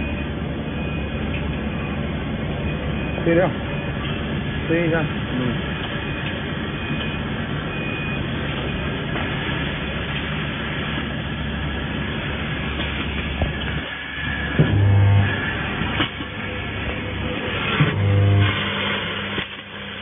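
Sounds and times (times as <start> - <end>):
welding machine running: 8.2 - 20.0
loud low hum: 14.2 - 20.0.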